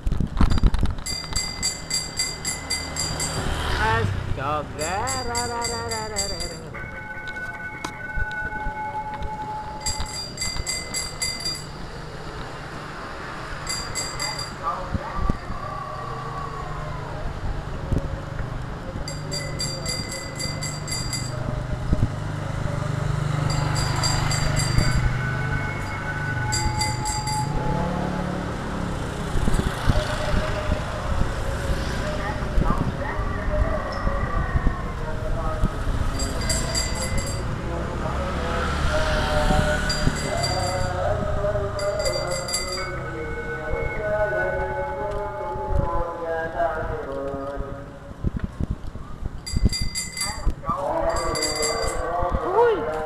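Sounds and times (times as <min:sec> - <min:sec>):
high metallic ringing: 0:00.5 - 0:03.6, 0:04.8 - 0:12.0, 0:13.6 - 0:14.7, 0:19.1 - 0:21.6, 0:23.4 - 0:27.7, 0:36.1 - 0:37.6, 0:39.8 - 0:44.0, 0:49.4 - 0:52.1
person speaking: 0:03.8 - 0:06.8.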